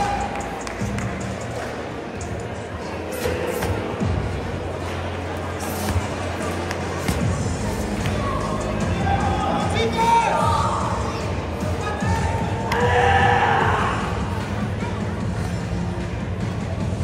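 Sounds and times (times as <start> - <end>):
background music: 0.0 - 17.0
crowd voices: 0.0 - 17.0.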